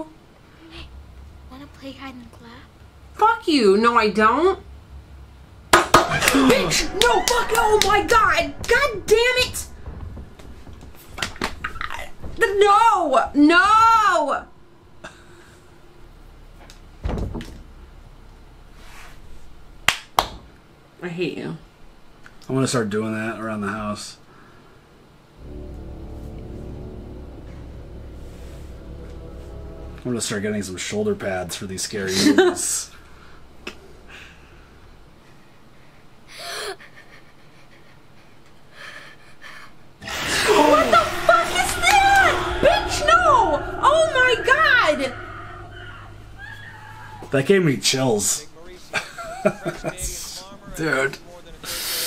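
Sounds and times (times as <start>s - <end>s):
dull low thump: 6.1s - 18.1s, 25.4s - 30.6s
sharp hand claps: 19.9s - 20.4s.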